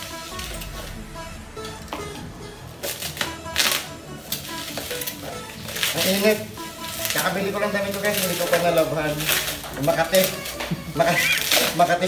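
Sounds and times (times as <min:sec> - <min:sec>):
quiet music: 0:00.0 - 0:12.0
plastic packaging crinkling: 0:05.7 - 0:11.9.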